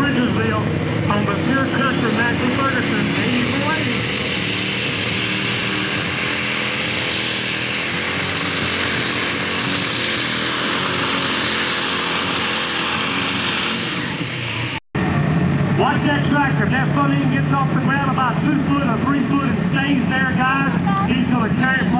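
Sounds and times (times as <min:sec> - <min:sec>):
diesel engine at full power: 0:00.0 - 0:21.9
high turbo whine: 0:00.0 - 0:21.9.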